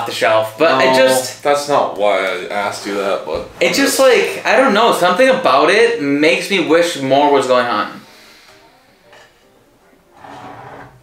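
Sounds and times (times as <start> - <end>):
glass bottle scraping on wood: 10.2 - 11.0.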